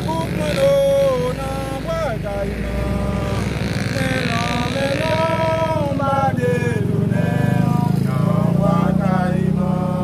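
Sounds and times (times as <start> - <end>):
engine running: 0.0 - 10.0.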